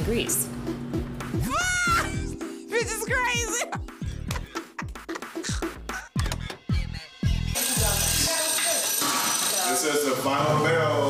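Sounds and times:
background music: 0.0s - 11.0s
loud bell ringing: 7.6s - 10.2s.

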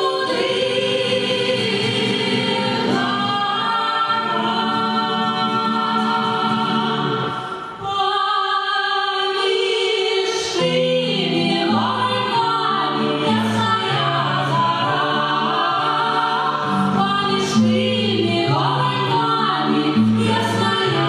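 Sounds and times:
vocal ensemble singing in harmony: 0.0s - 21.0s.

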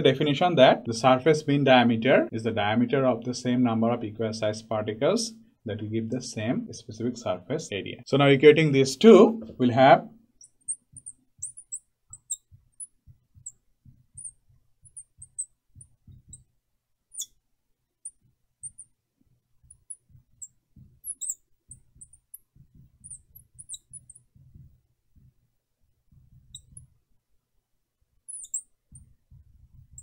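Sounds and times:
marker squeaking on board: 10.4s - 17.4s, 18.0s - 19.0s, 19.6s - 25.3s, 26.1s - 27.0s, 28.2s - 30.0s.

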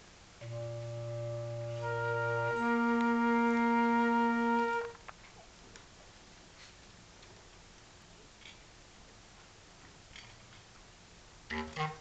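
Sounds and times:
clarinet playing held notes: 0.4s - 5.0s, 11.5s - 12.0s
flute playing held notes: 0.4s - 5.0s.

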